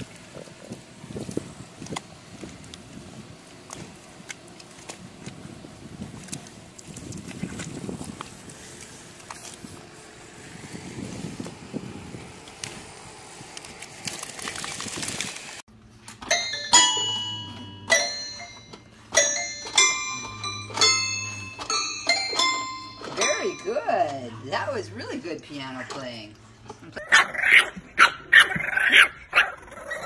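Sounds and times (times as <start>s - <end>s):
toy piano notes: 16.2s - 26.3s.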